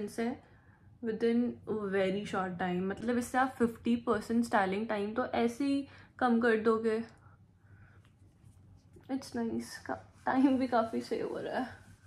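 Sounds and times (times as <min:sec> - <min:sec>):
rustling of hair and hands: 0:08.0 - 0:12.0.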